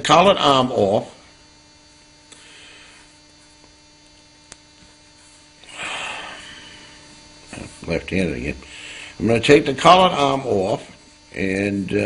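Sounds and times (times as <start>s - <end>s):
low electrical mains hum: 0.0s - 12.0s.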